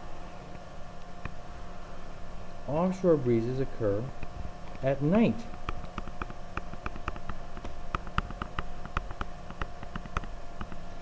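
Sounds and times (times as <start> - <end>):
faint electrical hum: 0.0 - 11.0
stylus tapping on screen: 4.7 - 10.8.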